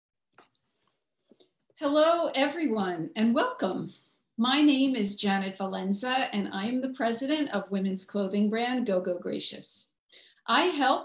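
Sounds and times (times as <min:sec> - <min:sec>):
woman speaking: 0:01.8 - 0:09.9, 0:10.5 - 0:11.0.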